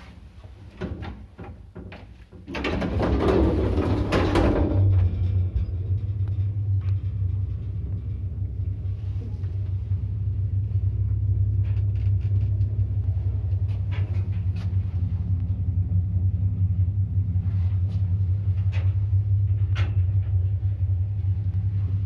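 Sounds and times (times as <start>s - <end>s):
lift car humming and rumbling: 0.0s - 22.0s.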